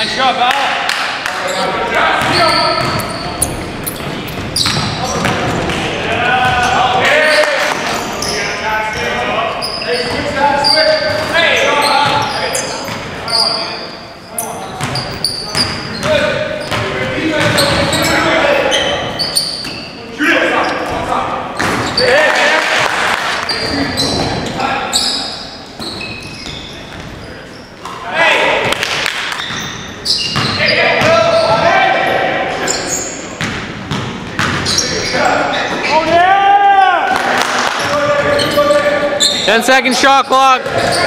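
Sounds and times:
players' voices echoing: 0.0 - 41.0
sneakers squeaking: 1.2 - 22.2, 23.3 - 36.2, 37.6 - 41.0.

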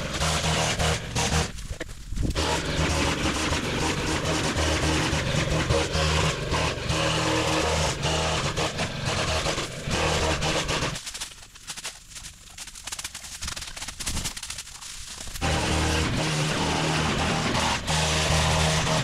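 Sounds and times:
string trimmer engine cutting brush: 0.0 - 19.0.

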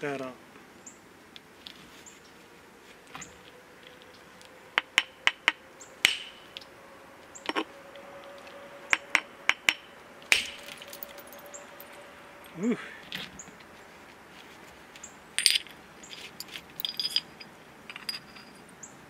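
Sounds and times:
billet striking flint: 4.8 - 6.6, 9.0 - 10.8
stone pieces clinking: 15.4 - 18.7.

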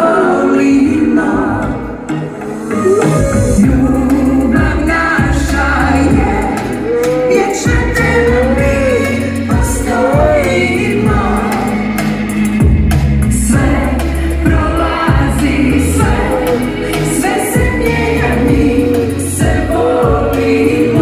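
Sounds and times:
woman singing with vibrato: 2.7 - 12.2
drums keeping a steady beat: 2.7 - 21.0
bass guitar: 2.8 - 21.0.

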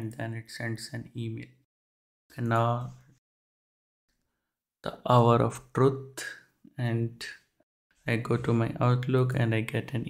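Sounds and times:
man speaking: 0.0 - 1.6, 2.4 - 3.0, 4.8 - 7.4, 8.1 - 10.0.

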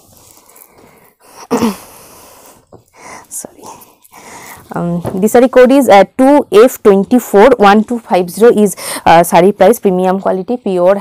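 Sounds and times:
fabric rustling: 0.0 - 1.2.

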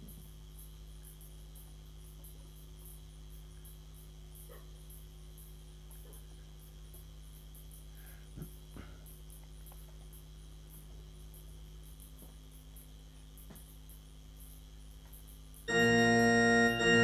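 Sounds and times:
crickets chirping: 0.0 - 17.0
low hum: 15.7 - 17.0.

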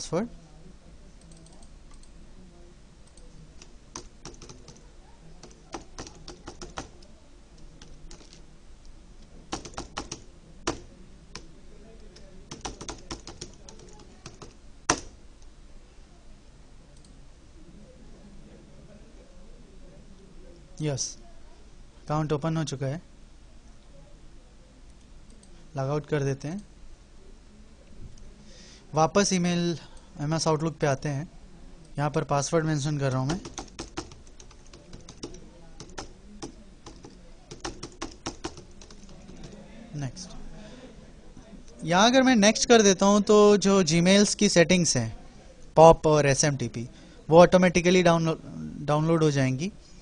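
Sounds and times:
keyboard typing: 3.0 - 8.4, 9.5 - 11.5, 12.1 - 15.2, 32.9 - 39.6.

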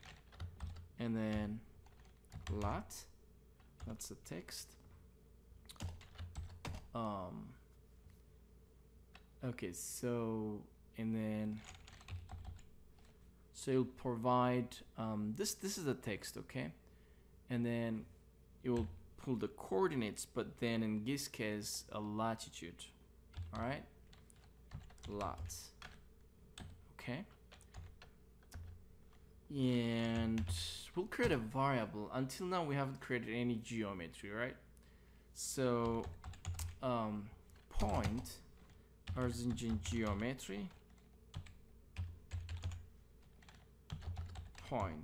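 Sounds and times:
keyboard typing: 0.0 - 2.8, 5.7 - 6.9, 11.6 - 13.2, 23.3 - 26.0, 26.6 - 29.2, 35.8 - 36.8, 37.5 - 45.0.

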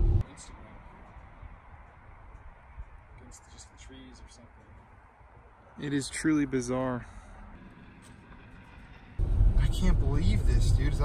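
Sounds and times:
low unsteady rumble: 0.0 - 0.2, 9.2 - 11.0.

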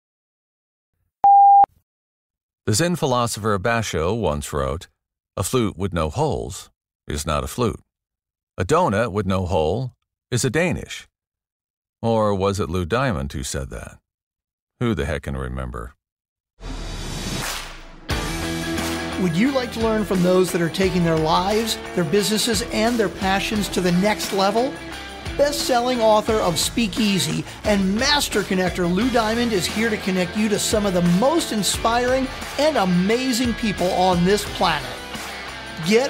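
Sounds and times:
electronic beep: 1.2 - 1.7
whoosh sound effect: 16.6 - 18.1
intro music: 16.6 - 36.0.

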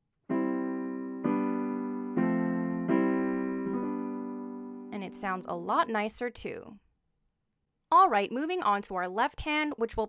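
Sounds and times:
piano chord ringing: 0.3 - 5.5.

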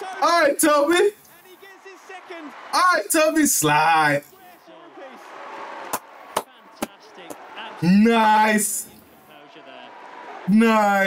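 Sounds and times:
sharp hand claps: 5.8 - 7.5.

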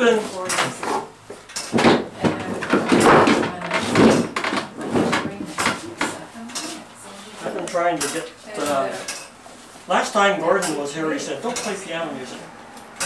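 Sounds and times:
wooden bench knocks and scrapes: 1.7 - 6.2.

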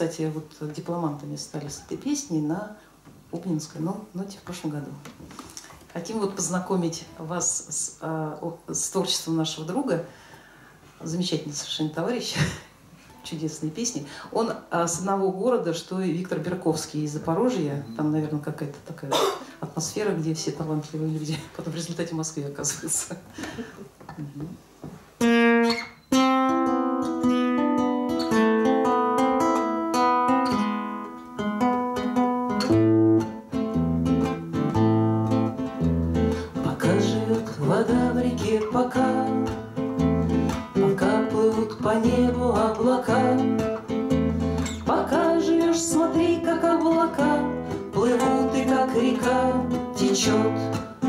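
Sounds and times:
acoustic guitars fingerpicking: 25.1 - 51.0.

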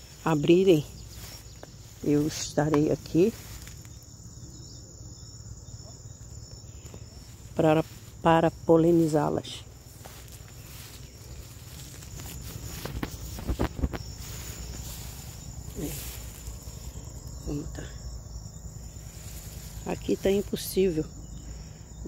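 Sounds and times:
rustling through plants: 0.0 - 4.3, 6.0 - 22.0
high-pitched insect drone: 0.0 - 22.0.

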